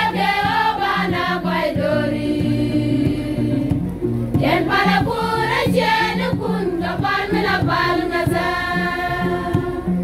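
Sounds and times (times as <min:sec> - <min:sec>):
low stepping accompaniment: 0:00.0 - 0:10.0
women's choir singing a hymn: 0:00.0 - 0:10.0.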